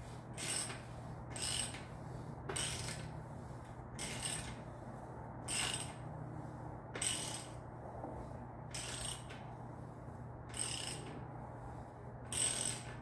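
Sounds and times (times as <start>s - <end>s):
steady low hum: 0.0s - 13.0s
ratchet wrench clicking: 0.4s - 1.8s, 2.6s - 3.1s, 4.0s - 4.6s, 5.5s - 6.0s, 7.0s - 7.6s, 8.7s - 9.4s, 10.5s - 11.1s, 12.3s - 13.0s.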